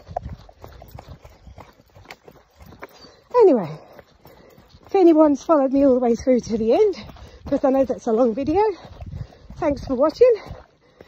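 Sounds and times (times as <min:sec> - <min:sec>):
running footsteps on dirt: 0:00.0 - 0:11.0.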